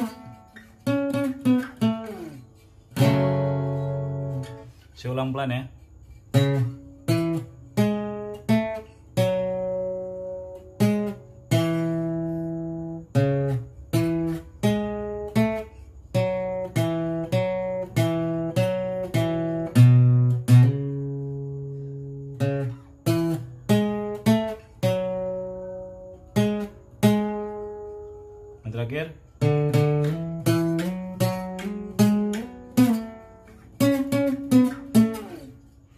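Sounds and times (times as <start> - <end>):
acoustic guitar slow plucked melody: 0.0 - 35.9.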